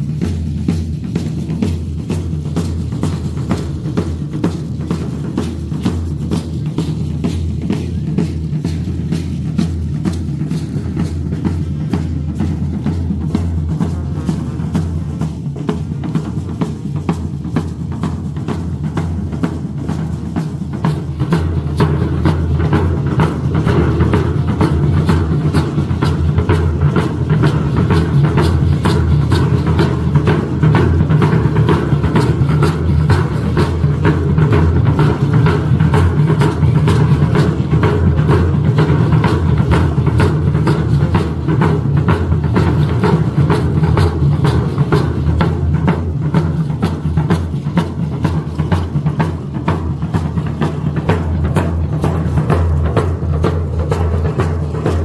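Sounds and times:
heavy bass drum beating: 0.0s - 55.0s.

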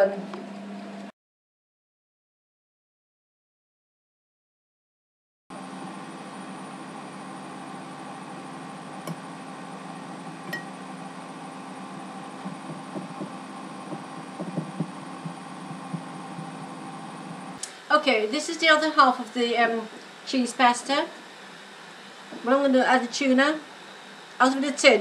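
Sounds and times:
steady electrical hum: 5.6s - 25.0s.

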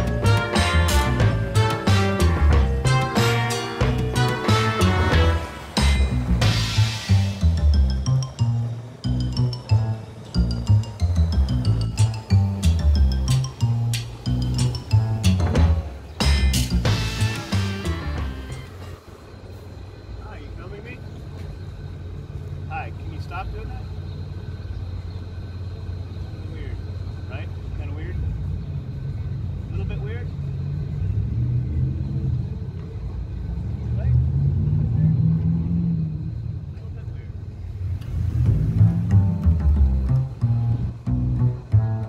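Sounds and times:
car engine rumbling: 0.0s - 42.0s.

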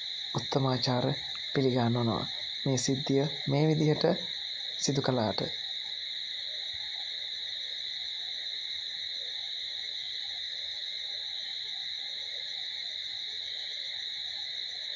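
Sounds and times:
high-pitched insect chorus: 0.0s - 14.9s.

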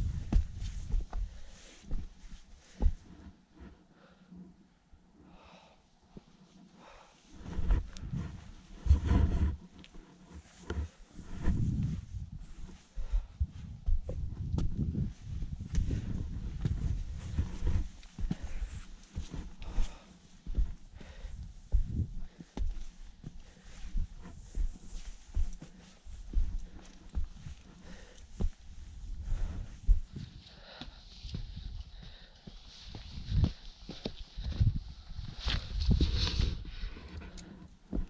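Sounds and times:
low wind rumble: 0.0s - 2.0s, 7.3s - 30.7s, 32.9s - 37.3s.

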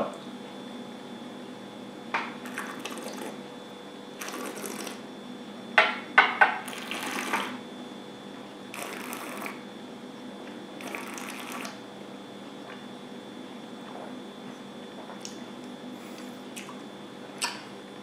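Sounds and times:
wet mouth smacks: 17.4s - 17.6s.

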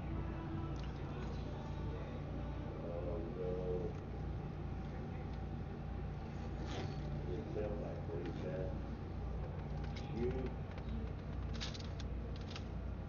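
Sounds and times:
faint muffled voices: 0.0s - 11.6s
steady low hum: 0.0s - 13.0s.

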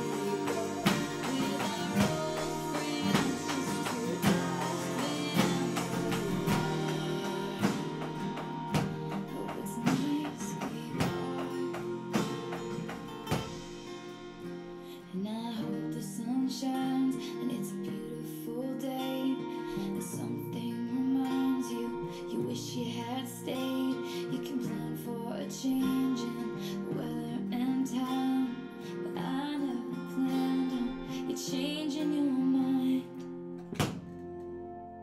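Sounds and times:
person singing: 0.0s - 13.6s, 14.8s - 33.2s
acoustic guitar strumming: 0.0s - 35.0s.

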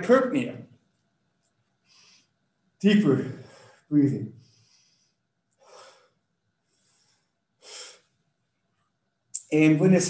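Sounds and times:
man breathing deeply: 1.8s - 2.4s, 3.4s - 8.1s.

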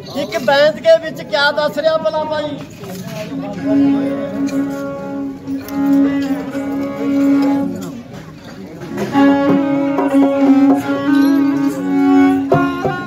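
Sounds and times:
sarangi bowed in long notes: 3.4s - 8.2s, 8.8s - 13.0s.

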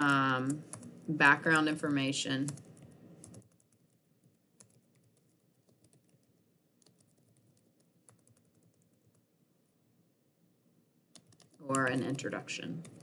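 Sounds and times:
computer keyboard typing: 0.0s - 1.1s, 2.4s - 9.2s, 11.1s - 13.0s.

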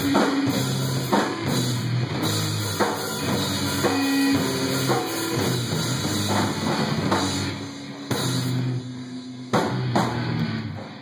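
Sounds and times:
drum kit hits: 0.0s - 8.8s, 9.5s - 11.0s
live band playing: 0.0s - 8.8s.

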